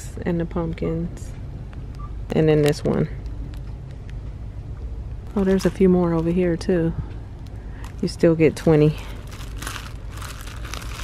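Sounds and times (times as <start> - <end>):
low steady hum: 0.0 - 11.0
plastic packaging crinkling: 5.3 - 6.6, 7.7 - 11.0.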